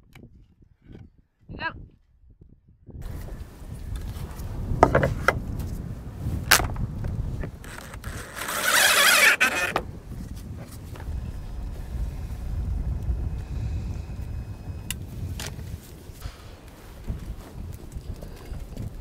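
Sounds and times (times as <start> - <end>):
wind rumbling on microphone: 0.0 - 19.0
harsh rasp on wooden hull: 7.6 - 9.8.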